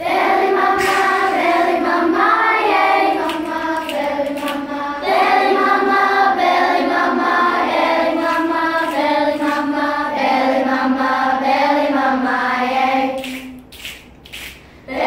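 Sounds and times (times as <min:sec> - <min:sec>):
children's choir singing: 0:00.0 - 0:13.7.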